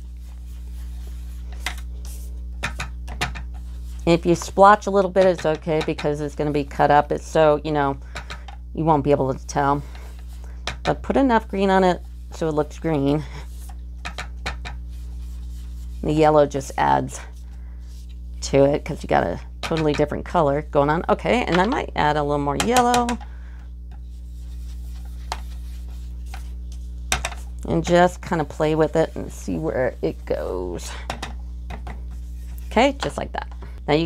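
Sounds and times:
brush dabbing and rubbing on card: 0.0 - 2.5, 3.5 - 4.9, 11.4 - 13.8, 14.6 - 18.3, 24.0 - 30.8, 32.1 - 33.0
steady low hum: 0.0 - 34.0.

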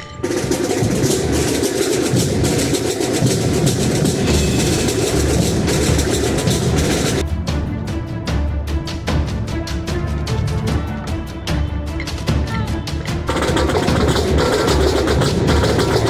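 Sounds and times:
marching band drum cadence: 0.0 - 16.0
bass drums: 0.2 - 16.0.

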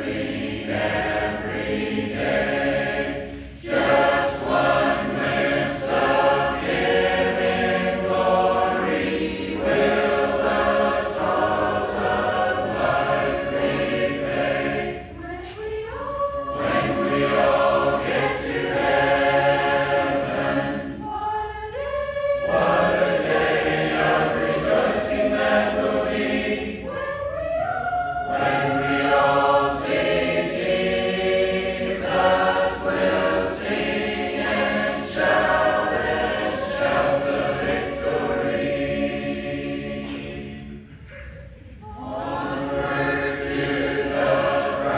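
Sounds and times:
congregation singing a hymn: 0.0 - 44.9
singers breathing: 3.2 - 3.7.

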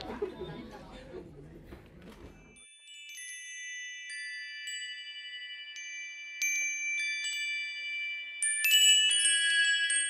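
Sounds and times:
metallic chimes ringing: 2.4 - 10.0.

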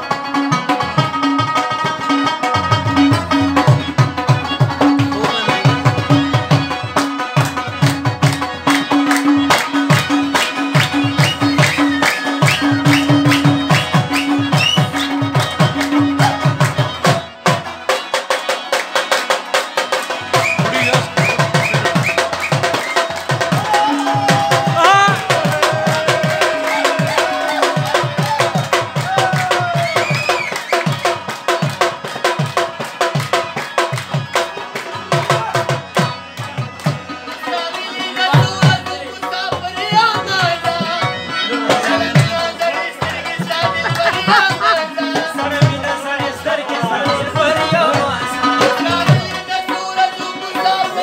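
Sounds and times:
harmonium chords: 0.0 - 51.0
fast hand-drum strokes: 20.2 - 34.4.

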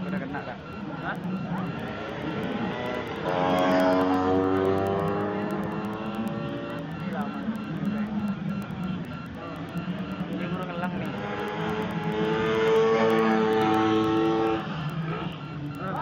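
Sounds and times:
voices: 0.0 - 16.0.

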